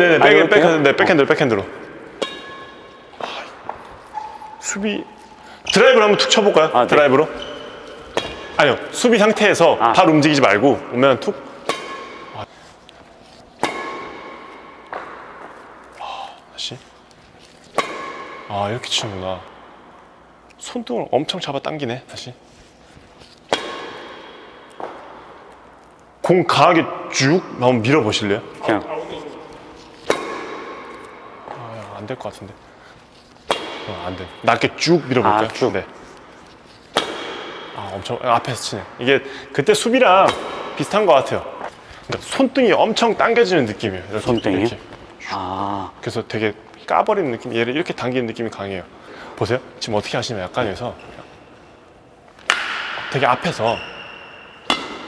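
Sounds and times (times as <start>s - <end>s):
racket striking shuttlecock: 1.6s - 5.3s, 6.9s - 9.3s, 10.4s - 16.0s, 17.4s - 20.5s, 23.2s - 26.1s, 28.5s - 31.8s, 33.1s - 38.0s, 40.1s - 41.8s, 51.2s - 55.0s.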